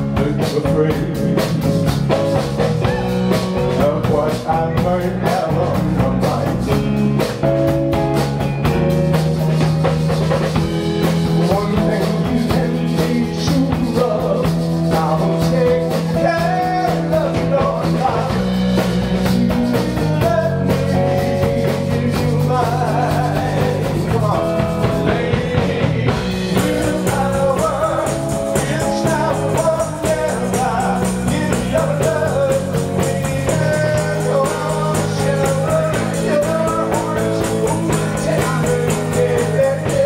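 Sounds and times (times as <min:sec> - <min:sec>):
live rock band playing: 0:00.0 - 0:40.0.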